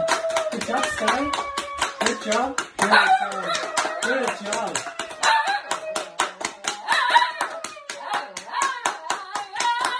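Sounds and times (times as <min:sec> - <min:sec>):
people clapping hands quickly: 0:00.0 - 0:09.9.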